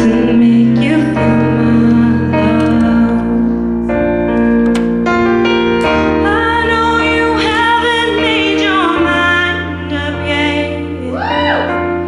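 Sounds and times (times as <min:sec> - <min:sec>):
woman singing with vibrato: 0:00.0 - 0:03.7, 0:06.2 - 0:12.0
piano accompaniment: 0:00.0 - 0:12.0.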